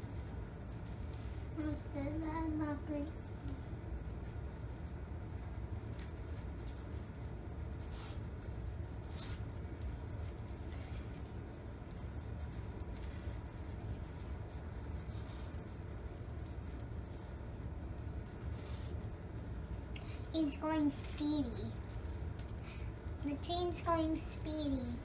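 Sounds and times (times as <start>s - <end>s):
low rumble of room noise: 0.0s - 25.0s
soft rustles: 0.6s - 2.4s, 5.8s - 17.0s.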